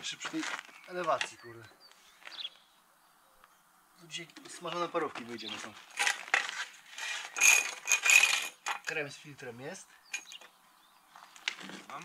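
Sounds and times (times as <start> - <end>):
spirit level scraping on concrete: 4.7 - 8.6.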